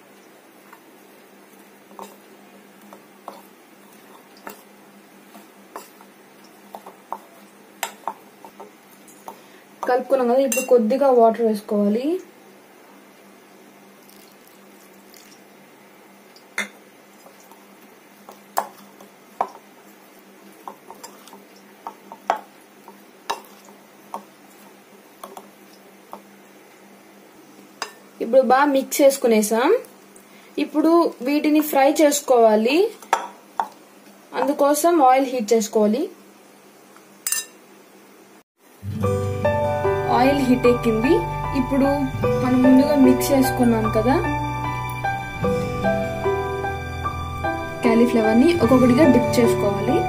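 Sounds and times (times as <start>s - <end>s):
faint room noise: 0.0s - 43.0s
metal spoon clinking on bowl: 10.5s - 10.8s
background music: 38.8s - 50.0s.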